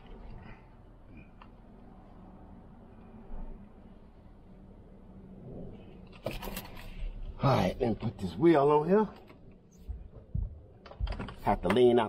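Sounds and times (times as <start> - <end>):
faint low rumble: 0.0 - 8.4.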